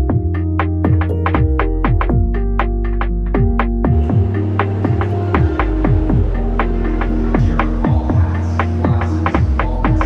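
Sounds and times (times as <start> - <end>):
electronic music: 0.0 - 10.0.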